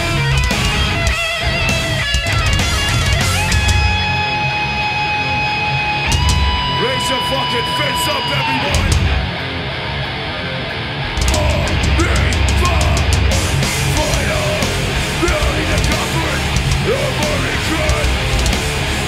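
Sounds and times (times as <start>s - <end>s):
hardcore band playing loud: 0.0s - 19.0s
long held guitar notes: 0.0s - 19.0s.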